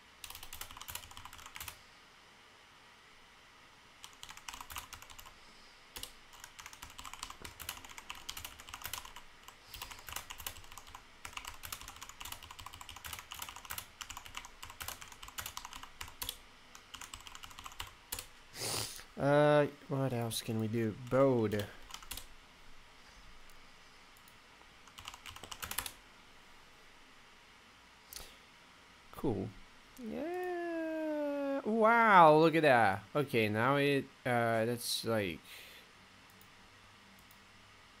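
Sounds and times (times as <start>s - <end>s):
typing on computer keyboard: 0.2s - 1.8s, 4.0s - 5.3s, 6.0s - 18.3s, 21.0s - 22.3s, 24.9s - 26.0s.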